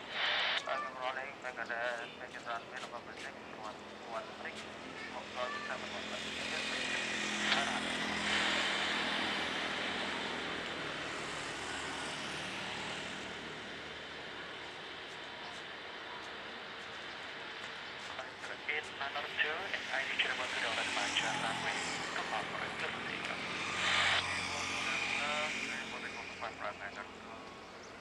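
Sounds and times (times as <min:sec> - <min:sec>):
jet engines taxiing: 0:00.0 - 0:28.0.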